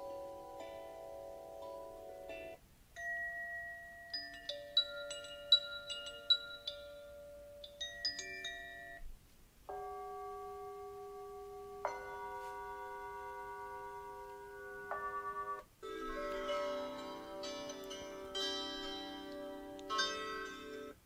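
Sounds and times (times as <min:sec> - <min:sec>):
alarm clock chime melodies: 0:00.0 - 0:09.0, 0:09.7 - 0:21.0.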